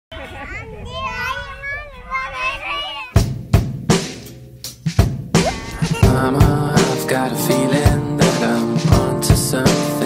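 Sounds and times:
child calling out: 5.4s - 6.1s.

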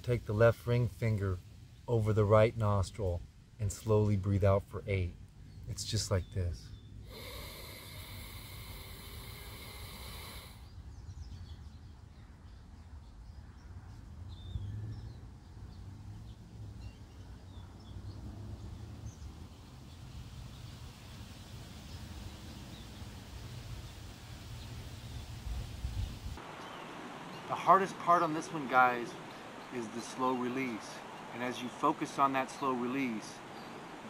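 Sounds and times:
quiet outdoor background: 0.0s - 34.0s
airy nasal exhale: 7.0s - 10.7s
nasal inhale hissing: 7.0s - 10.7s.

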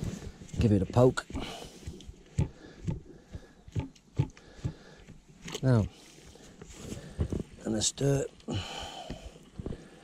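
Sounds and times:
stick stirring thick porridge: 0.3s - 7.4s.

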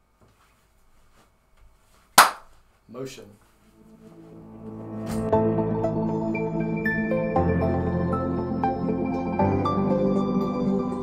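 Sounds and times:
sharp hand clap: 2.2s - 2.6s.

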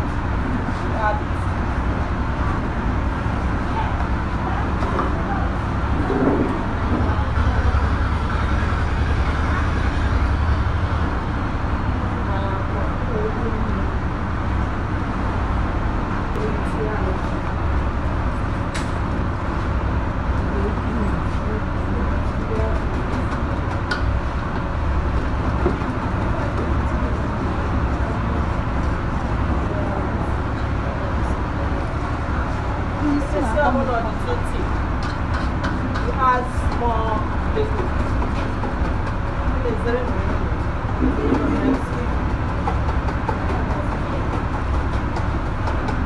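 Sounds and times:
low background rumble: 0.0s - 46.0s.

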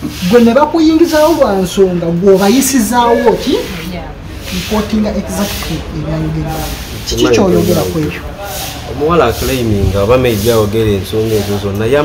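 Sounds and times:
person talking: 4.5s - 10.4s.

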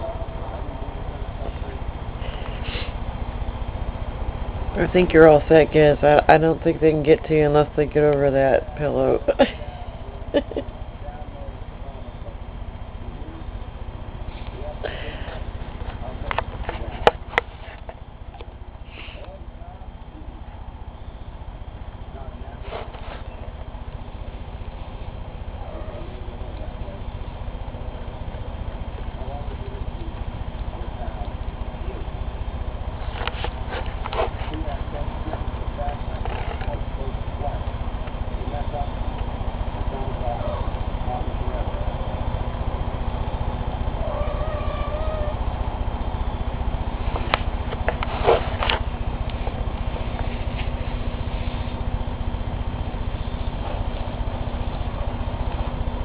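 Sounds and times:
pulsing low rumble: 0.0s - 56.0s
dog growling low: 43.9s - 45.6s
kitten mewing: 44.0s - 45.5s.

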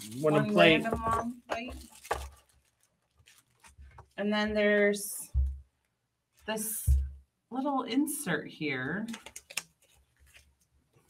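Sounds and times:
box and plastic bag rustling: 0.0s - 4.6s.

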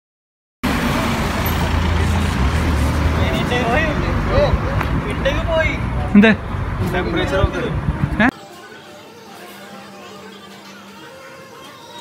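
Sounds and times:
car driving past: 0.6s - 8.0s.

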